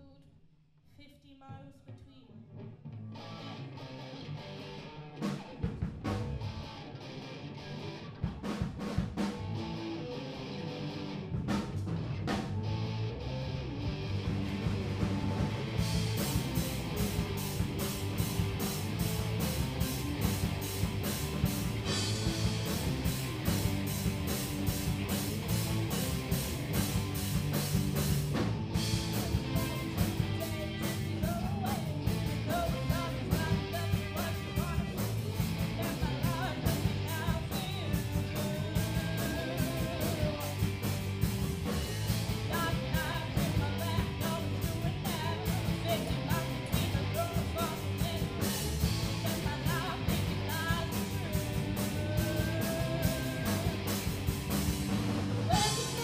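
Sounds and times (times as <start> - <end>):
live rock band playing: 3.0 - 56.0
person singing: 28.8 - 40.8, 42.4 - 54.3, 55.4 - 56.0.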